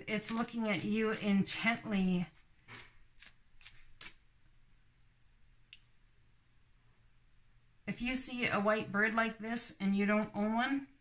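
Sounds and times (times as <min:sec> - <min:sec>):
cards shuffled by hand: 0:02.7 - 0:04.2.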